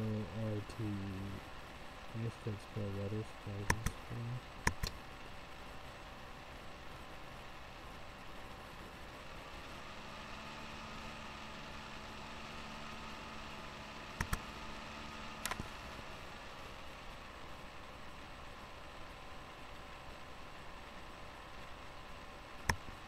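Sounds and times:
faint hum: 0.0s - 23.0s
room hiss: 0.0s - 23.0s
computer mouse clicks: 3.7s - 4.0s, 4.6s - 5.0s, 14.2s - 14.4s, 15.4s - 15.7s, 22.6s - 22.8s.

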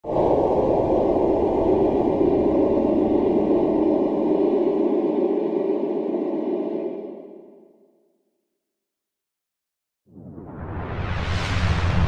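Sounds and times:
low rushing noise: 0.0s - 7.8s.

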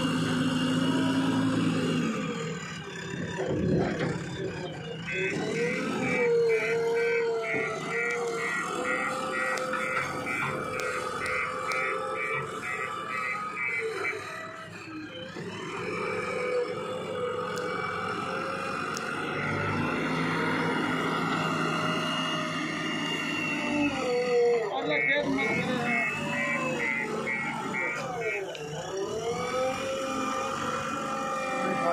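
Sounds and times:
diesel engine under load: 0.0s - 31.9s
hydraulic whine: 0.0s - 31.9s
high-pitched reversing beeps: 4.5s - 15.4s, 19.1s - 20.0s, 24.8s - 28.5s.

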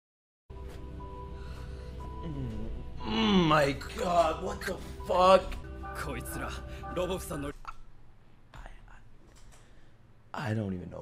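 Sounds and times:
breath sounds: 0.7s - 2.7s, 8.5s - 10.3s
person speaking: 2.2s - 7.9s.

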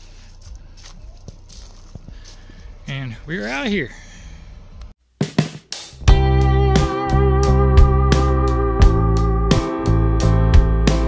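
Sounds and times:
footsteps on dry leaves: 0.0s - 2.9s.

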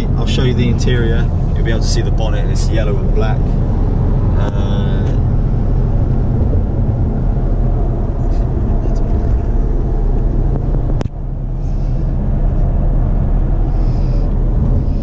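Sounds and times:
engine and road noise drone: 0.0s - 15.0s.

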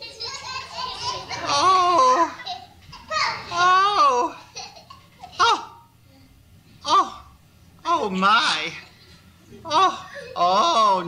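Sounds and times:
high voice laughing: 1.1s - 5.8s, 9.6s - 11.0s.

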